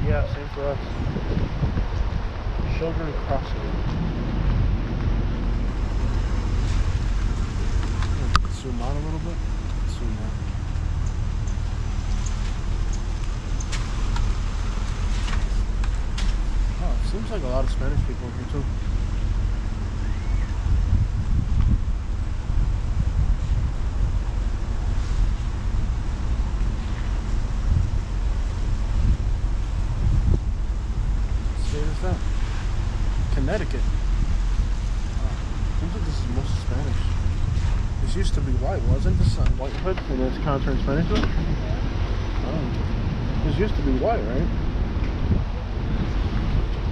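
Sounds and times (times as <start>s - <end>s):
car engine and road noise: 0.0s - 46.9s
wind buffeting microphone: 0.0s - 46.9s.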